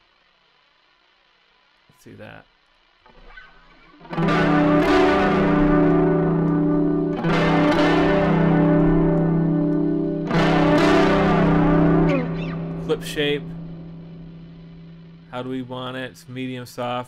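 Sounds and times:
distorted electric guitar chords: 3.0s - 17.0s.

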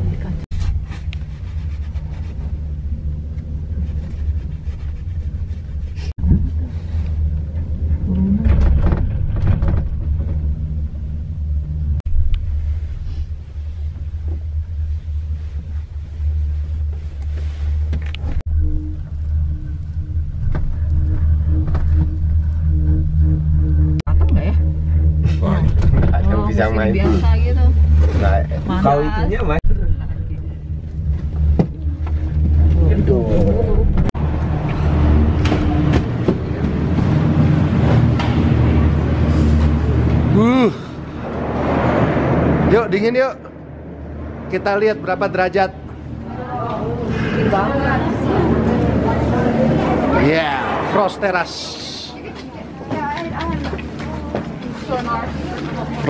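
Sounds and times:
gondola cabin rumble: 0.0s - 56.0s.

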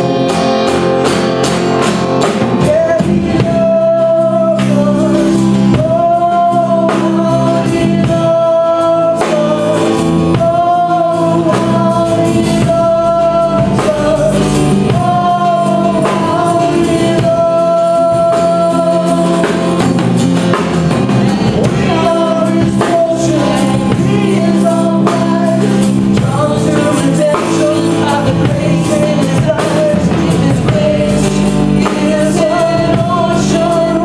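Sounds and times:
steady drum beat: 0.0s - 34.0s
strummed guitars: 0.0s - 34.0s
woman and man singing: 2.2s - 34.0s.

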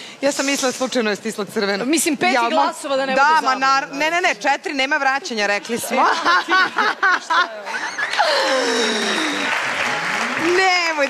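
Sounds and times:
audience applause: 7.9s - 11.0s.

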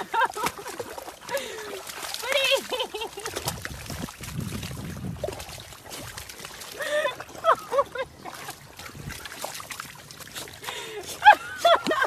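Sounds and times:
dog squelching in mud: 0.2s - 12.0s.

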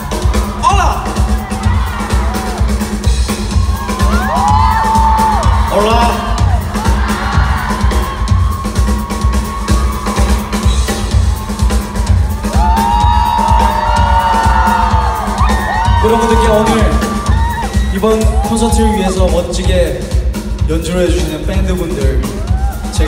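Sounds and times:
audience screaming and cheering: 0.0s - 23.0s
live band drum and bass groove: 0.0s - 23.0s.

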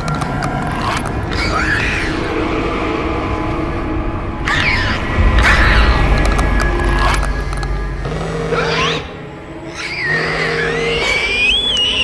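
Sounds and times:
deep rumble: 0.0s - 9.8s
low droning horror score: 0.0s - 12.0s
monster shrieking: 0.8s - 2.6s, 4.4s - 7.3s, 8.4s - 12.0s.

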